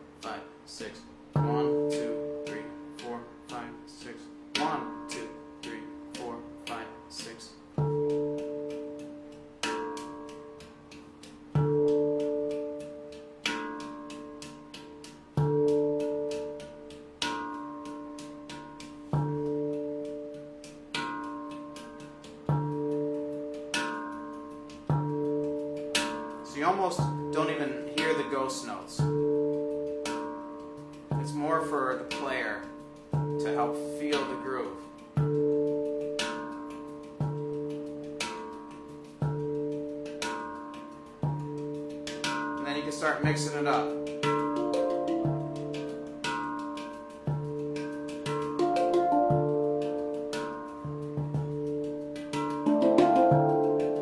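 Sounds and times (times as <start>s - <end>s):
handpan groove: 0.0s - 54.0s.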